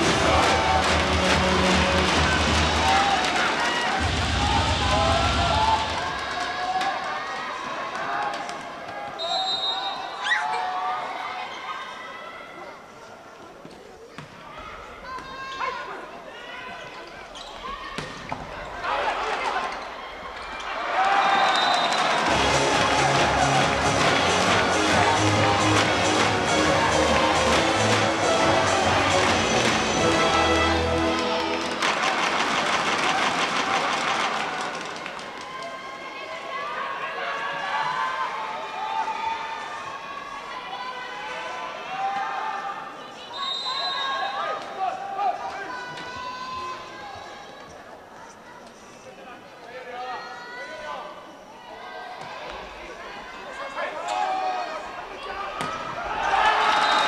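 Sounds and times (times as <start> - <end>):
arena music with heavy bass: 0.0 - 2.8, 22.3 - 31.2
crowd clapping rhythmically: 0.0 - 4.2, 22.1 - 35.4.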